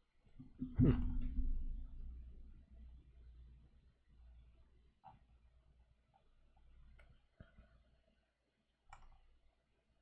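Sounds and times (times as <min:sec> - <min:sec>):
faint computer clicks: 0:08.9 - 0:09.4.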